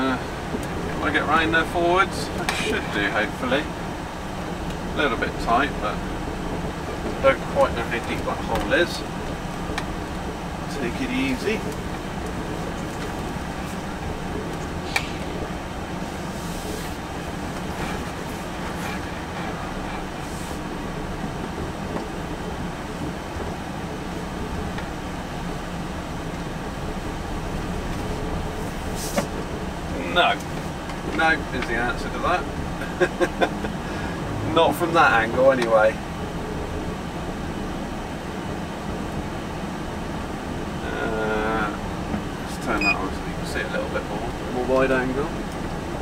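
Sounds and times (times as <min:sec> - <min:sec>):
lorry engine drone: 0:00.0 - 0:46.0
road rumble: 0:00.0 - 0:46.0
sharp click: 0:14.9 - 0:15.4.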